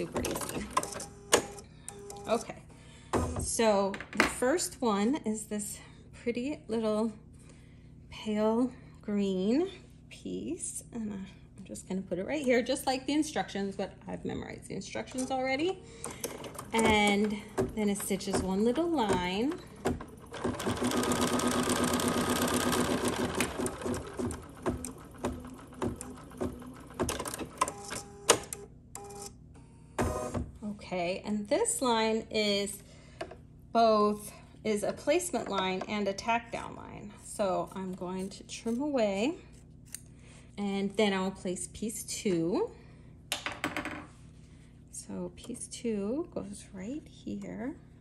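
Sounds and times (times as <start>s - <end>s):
embroidery machine stitching: 16.0s - 29.2s.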